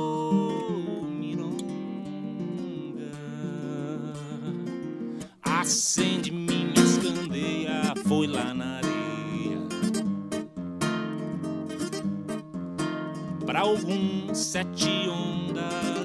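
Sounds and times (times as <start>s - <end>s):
man singing: 0.0s - 10.0s, 13.4s - 16.0s
nylon-string guitar playing: 0.0s - 16.0s.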